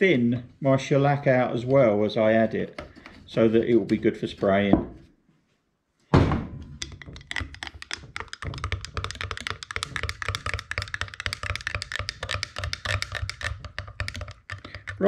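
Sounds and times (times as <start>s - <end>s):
loud thunk: 6.1s - 6.7s
stirrer clicking against glass jar: 6.8s - 15.0s.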